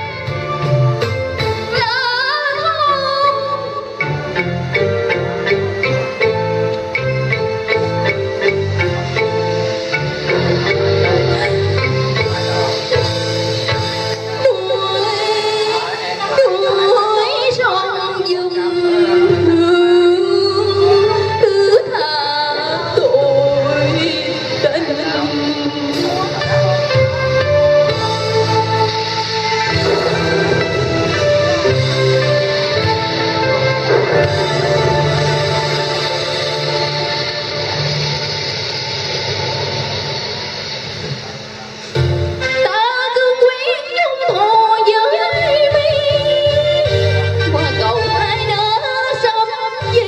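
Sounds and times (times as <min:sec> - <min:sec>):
woman singing opera: 0:01.7 - 0:04.0, 0:14.4 - 0:26.1, 0:42.6 - 0:47.2, 0:48.3 - 0:50.0.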